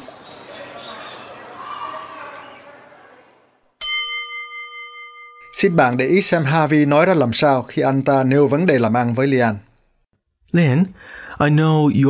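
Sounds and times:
bell-like chime ringing: 0:03.8 - 0:06.2.

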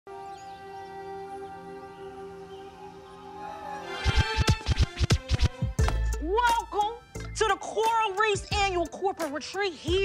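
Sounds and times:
calm ambient music: 0:00.1 - 0:10.0
turntable scratching: 0:04.0 - 0:06.6
hip-hop music: 0:04.0 - 0:10.0.

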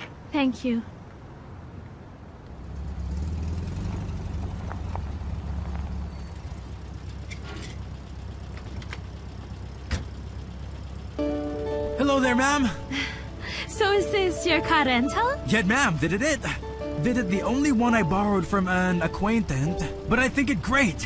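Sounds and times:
car engine rumble: 0:00.0 - 0:21.0.

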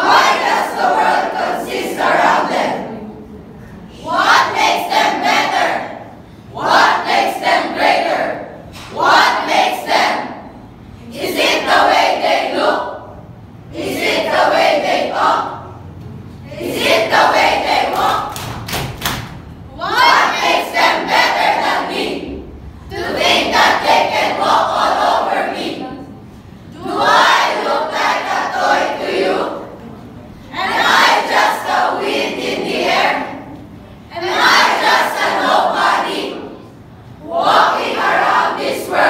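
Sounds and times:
young voices chanting in unison: 0:00.0 - 0:18.8, 0:19.7 - 0:39.0.

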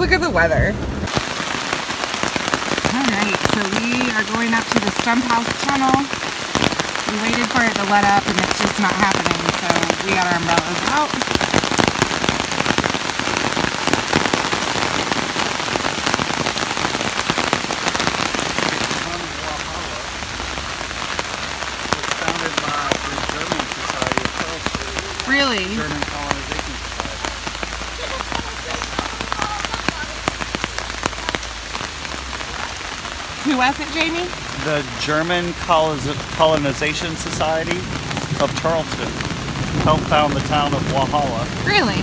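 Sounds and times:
rain on pavement and umbrella: 0:00.0 - 0:42.0.

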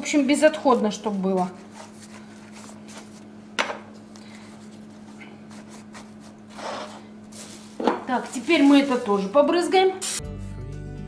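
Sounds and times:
flatbread rustling: 0:00.7 - 0:03.4, 0:04.0 - 0:09.4.

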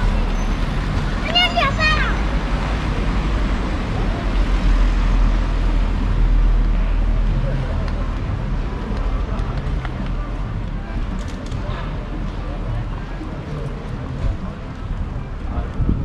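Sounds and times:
rumble of passing road vehicles: 0:00.0 - 0:16.0
voices of passers-by: 0:00.0 - 0:16.0.

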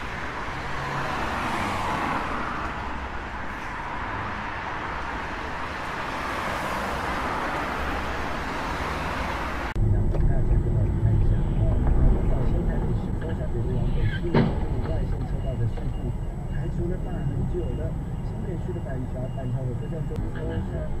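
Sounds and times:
engines rumbling in city traffic: 0:00.0 - 0:21.0.

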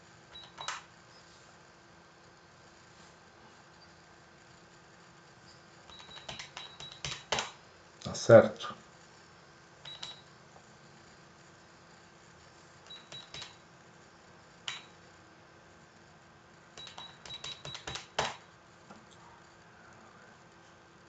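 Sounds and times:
keyboard and mouse clicks: 0:00.3 - 0:00.9, 0:05.9 - 0:07.6, 0:12.9 - 0:13.6, 0:14.7 - 0:14.9, 0:16.8 - 0:18.4.

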